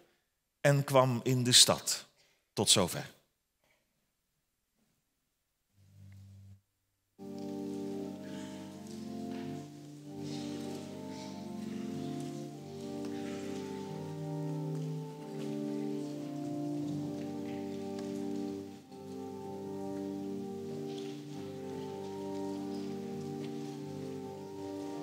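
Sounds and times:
church organ playing chords: 7.2 - 25.0.

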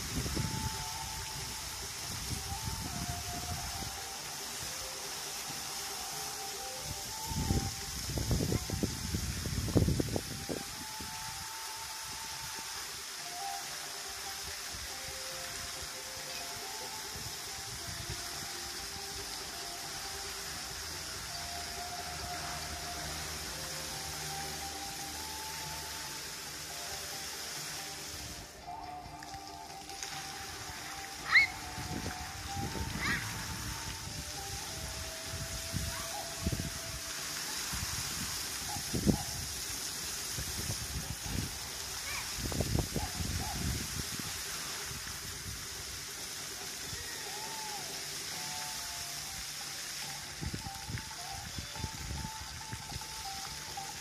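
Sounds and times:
water jets spraying into pool: 0.0 - 54.0
song over loudspeakers: 9.8 - 37.6.

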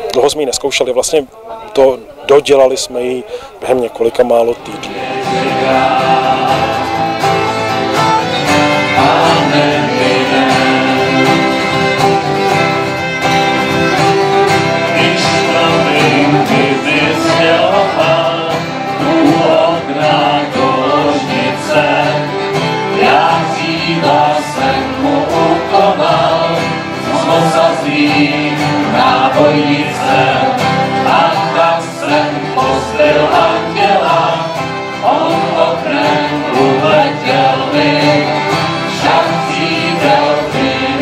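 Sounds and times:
strummed acoustic guitars: 4.4 - 41.0
fiddle: 4.5 - 41.0
piano accordion: 4.6 - 41.0
voices singing together: 4.6 - 41.0.

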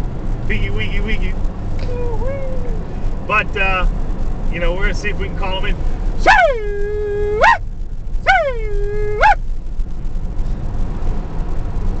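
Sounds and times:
low vehicle rumble: 0.0 - 12.0
hog call: 6.2 - 7.6, 8.3 - 9.4.

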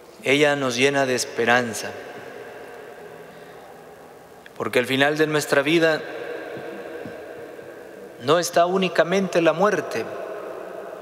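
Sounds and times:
man preaching with reverberation: 0.1 - 11.0
sound system hum: 1.8 - 11.0.

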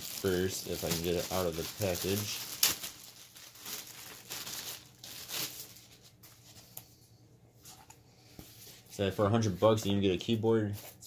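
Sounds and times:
plastic bag crinkling: 0.0 - 6.5.

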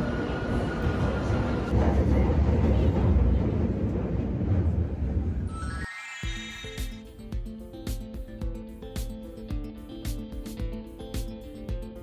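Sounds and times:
train carriage low rumble: 0.0 - 5.5
train whine and rumble: 0.0 - 5.9.

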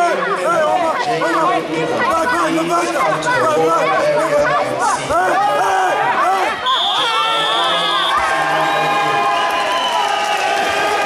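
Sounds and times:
crowd noise: 0.0 - 11.0
people shouting: 4.4 - 8.6.

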